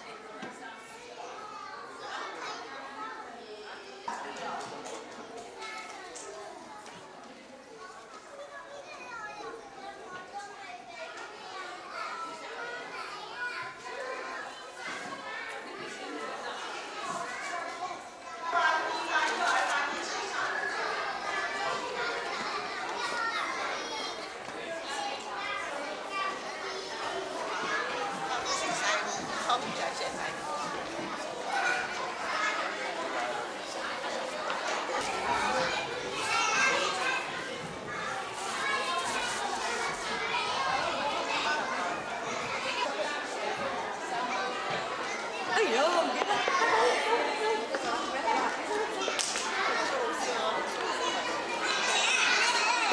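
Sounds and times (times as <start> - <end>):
children chattering and calling: 0.0 - 52.9
adult voices: 11.1 - 52.9.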